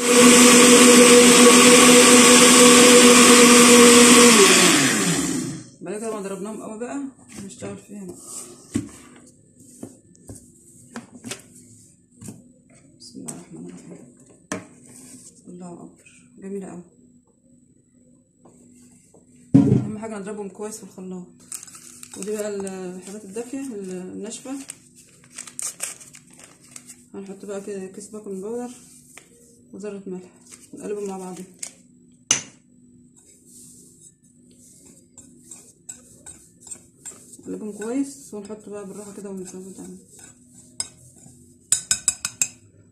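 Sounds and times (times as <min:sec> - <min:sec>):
whisk scraping in a bowl: 0:33.2 - 0:42.6.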